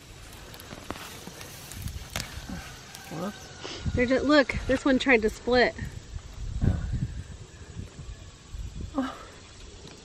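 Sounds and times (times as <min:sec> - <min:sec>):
low rumbling on microphone: 0:05.8 - 0:09.3.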